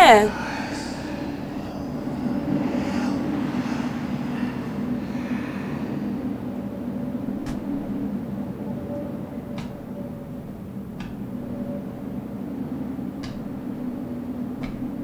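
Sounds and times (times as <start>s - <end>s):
low rumbling drone: 0.3s - 15.0s.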